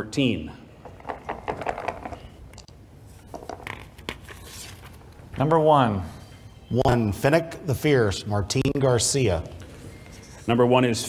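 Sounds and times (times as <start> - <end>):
paper rustling: 3.1 - 5.3.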